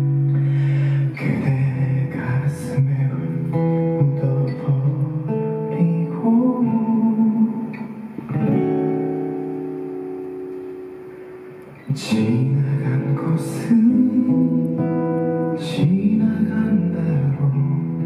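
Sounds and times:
acoustic guitar picking notes and chords: 0.0s - 18.0s.

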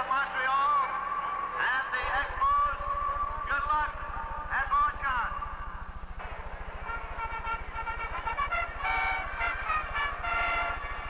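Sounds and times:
steady low hum: 0.0s - 11.0s
trumpets playing held notes: 2.0s - 11.0s.

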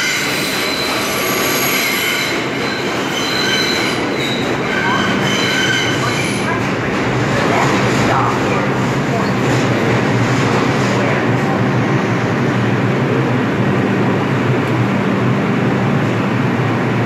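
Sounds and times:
subway train humming: 0.0s - 17.0s
people talking: 4.7s - 5.3s, 5.9s - 11.9s.

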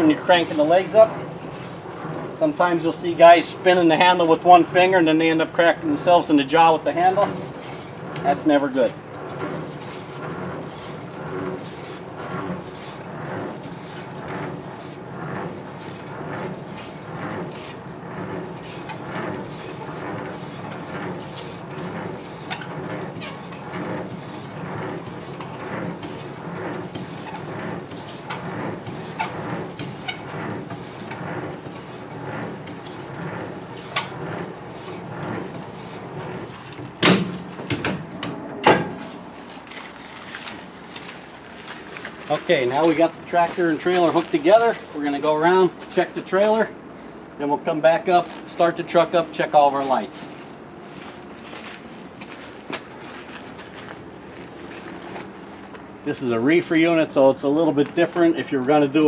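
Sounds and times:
hand crank grinding and clicking: 6.0s - 38.3s
loud metal clanks: 7.0s - 39.3s.

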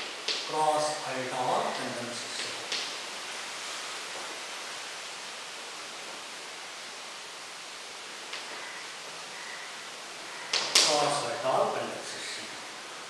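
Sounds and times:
room noise hiss: 0.0s - 13.0s.

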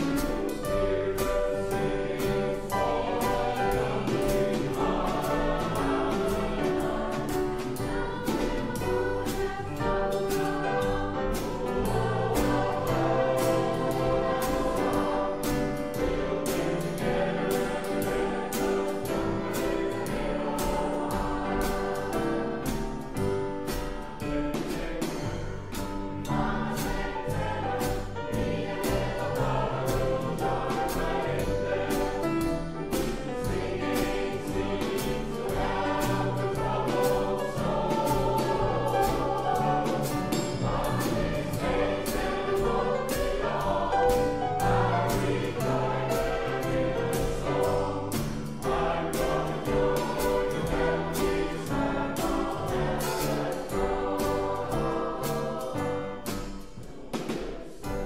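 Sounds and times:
choir singing in harmony: 0.0s - 58.0s
drum kit beat: 0.0s - 58.0s
piano: 0.0s - 58.0s.

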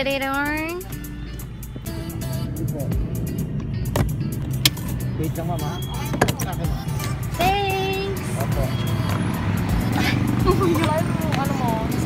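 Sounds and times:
people talking: 0.0s - 0.8s, 5.2s - 8.8s, 10.5s - 12.0s
low vehicle rumble: 0.0s - 12.0s.

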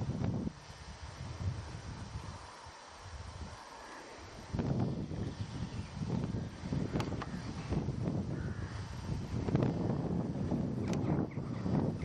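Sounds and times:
wind buffeting microphone: 0.0s - 12.0s
sharp click: 10.8s - 11.1s.

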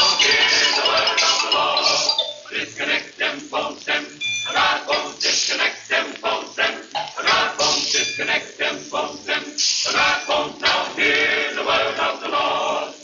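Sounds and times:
male choir singing clipped notes: 0.0s - 13.0s.

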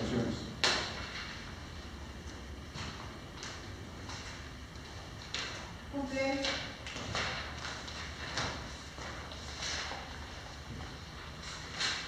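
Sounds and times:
papers rustling and shuffling: 6.8s - 12.0s.

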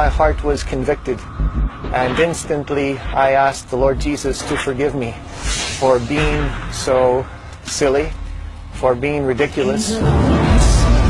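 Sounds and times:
man talking: 0.0s - 1.2s, 1.9s - 11.0s.

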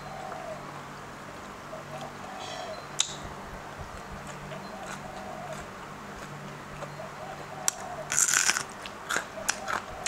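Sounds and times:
electric fan humming: 0.0s - 10.0s
person chewing raw vegetables: 3.9s - 10.0s.

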